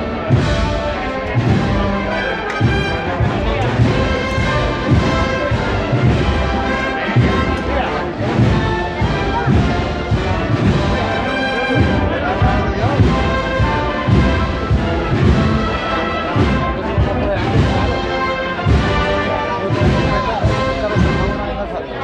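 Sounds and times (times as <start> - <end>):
bass drum beats: 0.0 - 21.8
wind band playing a march: 0.0 - 22.0.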